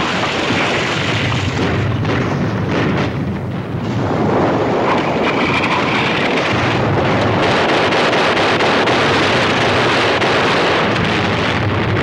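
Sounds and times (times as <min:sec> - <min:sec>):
rumble of explosions and artillery fire: 0:00.0 - 0:12.0.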